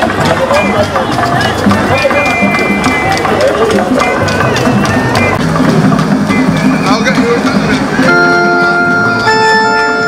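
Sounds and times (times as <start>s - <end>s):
percussion beat: 0.0s - 10.0s.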